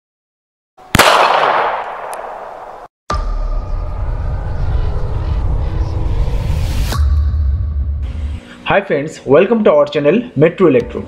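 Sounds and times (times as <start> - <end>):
light bulb bursting with bang: 0.9 - 2.6.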